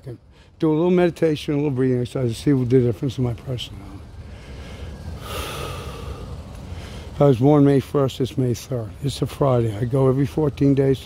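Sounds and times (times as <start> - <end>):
low steady rumble: 0.0 - 11.0
man taking deep breath: 4.2 - 7.2.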